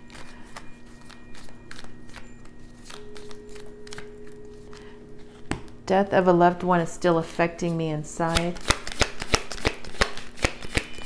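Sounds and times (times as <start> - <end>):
cards being shuffled: 0.0 - 5.8, 7.6 - 11.0.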